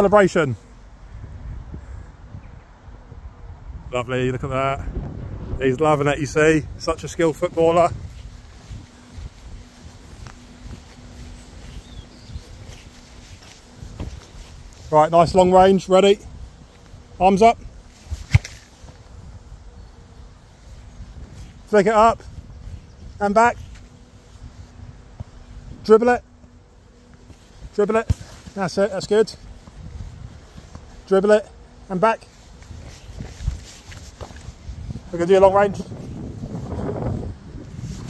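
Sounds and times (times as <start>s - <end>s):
wind buffeting microphone: 1.0s - 26.4s, 29.4s - 31.0s, 32.5s - 38.0s
football thumping against goalkeeper: 13.4s - 14.4s, 18.1s - 18.7s, 27.9s - 28.6s.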